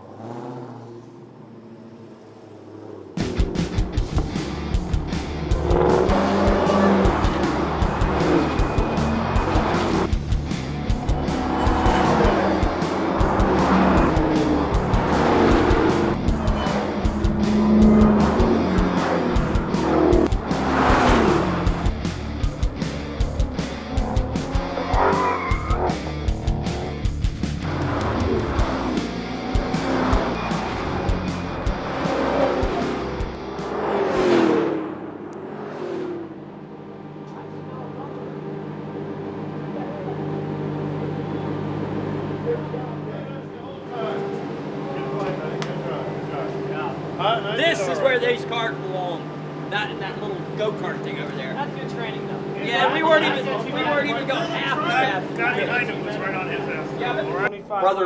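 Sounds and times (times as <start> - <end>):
car engines revving: 0.0 - 57.5
background music with steady beat: 3.2 - 33.8
tyres squealing: 20.9 - 27.0.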